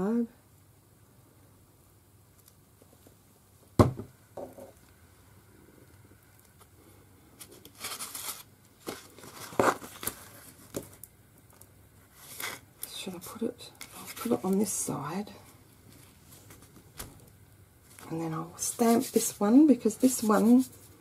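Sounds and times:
knock on desk: 3.8 - 4.7
card stock rustling and scraping: 7.4 - 11.0, 12.1 - 12.7.

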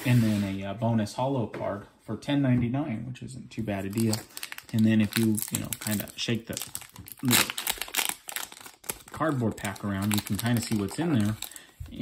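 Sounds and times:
foil wrapper crinkling: 3.8 - 11.8.

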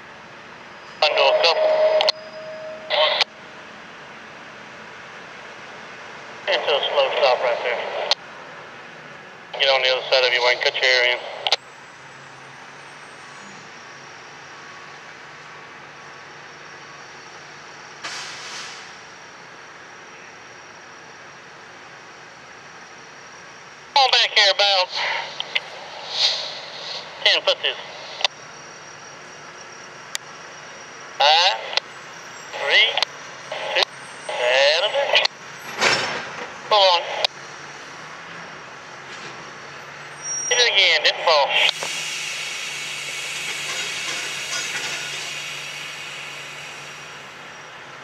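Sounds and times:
radio voice calling out: 1.0 - 2.2, 2.8 - 3.3, 6.4 - 8.2, 9.5 - 11.6, 23.9 - 28.3, 31.2 - 31.8, 32.5 - 35.3, 36.7 - 37.3, 40.5 - 41.8
short hiss: 18.0 - 19.0, 24.9 - 27.3, 41.7 - 47.3.

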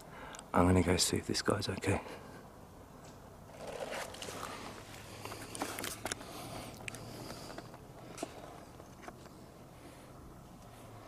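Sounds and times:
clothing and gear rustling: 3.5 - 6.2.

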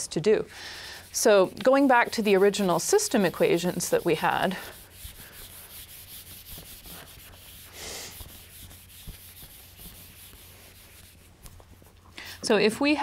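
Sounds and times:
eraser rubbing on whiteboard: 0.8 - 12.5.

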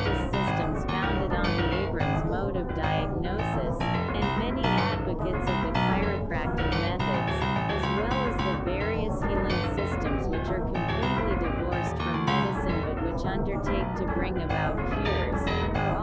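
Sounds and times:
short synthesizer notes: 0.0 - 13.2.

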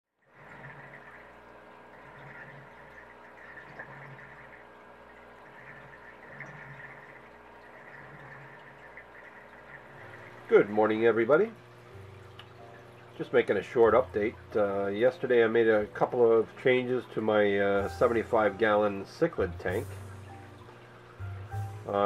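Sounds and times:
faint water noise: 0.1 - 22.0
aquarium equipment hum: 0.2 - 22.0.

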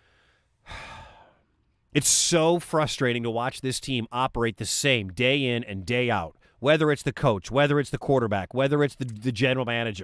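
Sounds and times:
man sighing: 0.0 - 1.5.

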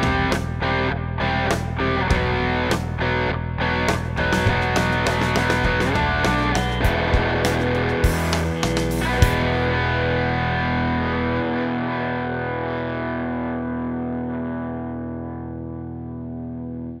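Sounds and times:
distorted electric guitar chord: 0.0 - 17.0.

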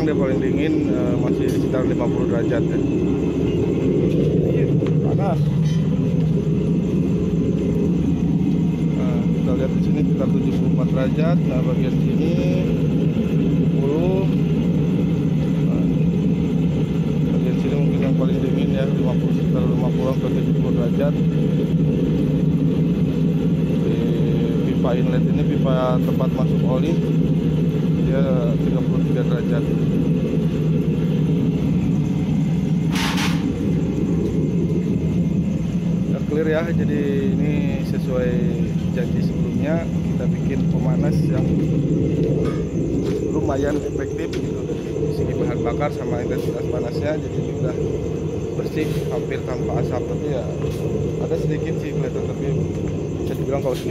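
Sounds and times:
stove burner low rushing: 0.0 - 53.9.

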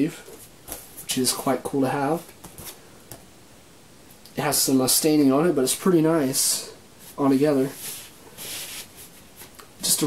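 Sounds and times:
cardboard sleeve rubbing: 7.0 - 9.5.

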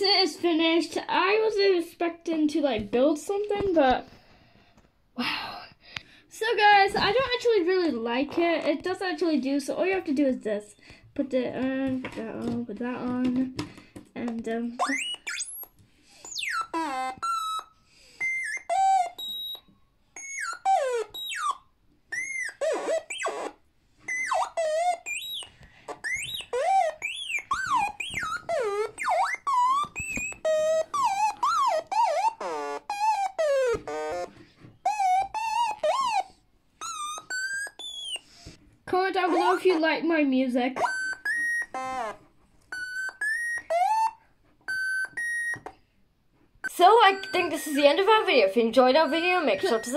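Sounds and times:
sliding electronic synth notes: 22.2 - 36.2.

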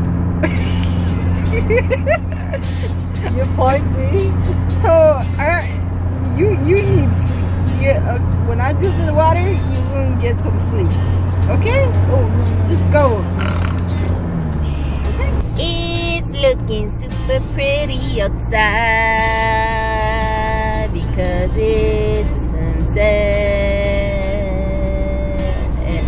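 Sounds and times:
background music: 0.0 - 26.0
car engine and road drone: 0.0 - 26.0
woman laughing: 0.4 - 5.0.

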